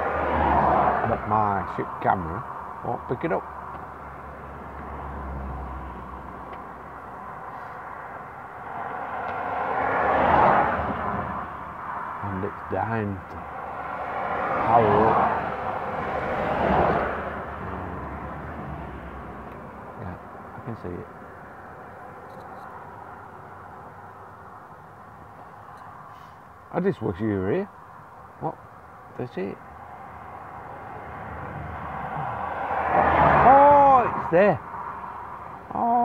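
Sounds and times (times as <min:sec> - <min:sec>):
vehicle passing: 0:00.0 - 0:26.4, 0:29.2 - 0:35.8.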